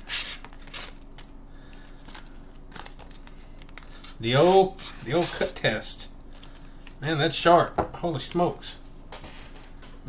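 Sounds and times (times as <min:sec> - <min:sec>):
knife slicing paper: 0:03.8 - 0:05.6.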